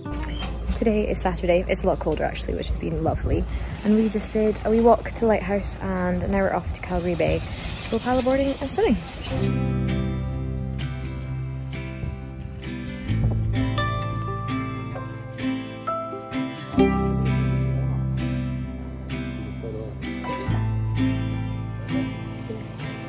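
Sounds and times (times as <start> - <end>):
plucked strings: 0.0 - 2.5, 9.4 - 23.0
held bass notes: 0.0 - 6.9, 9.3 - 23.0.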